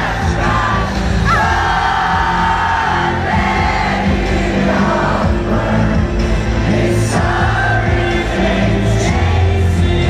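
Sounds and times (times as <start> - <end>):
crowd: 0.0 - 10.0.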